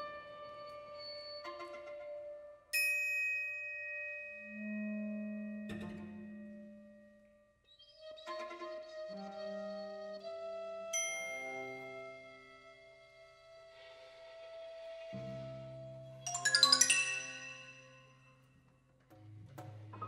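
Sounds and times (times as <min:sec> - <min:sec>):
chamber ensemble playing: 0:16.3 - 0:18.2.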